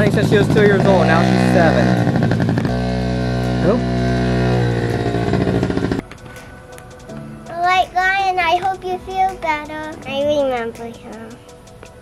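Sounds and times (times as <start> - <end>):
small dirt bike engine running: 0.0 - 6.0.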